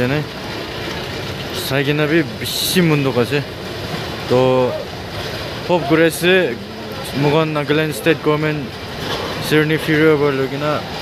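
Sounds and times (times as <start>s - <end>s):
man speaking: 4.3s - 4.9s, 5.6s - 8.7s.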